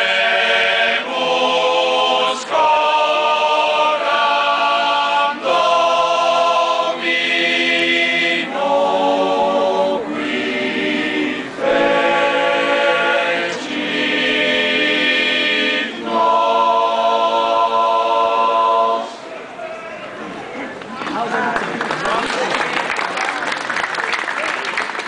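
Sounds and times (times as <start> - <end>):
male choir singing: 0.0 - 19.4.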